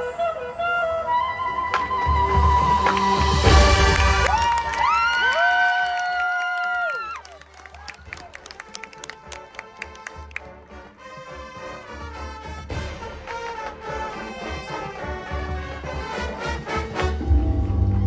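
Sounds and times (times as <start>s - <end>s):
marching band horns chord: 2.4s - 4.3s, 8.5s - 18.0s.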